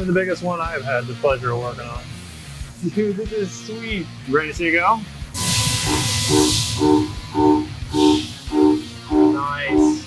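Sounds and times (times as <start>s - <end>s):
background music with steady pulse: 0.0s - 10.0s.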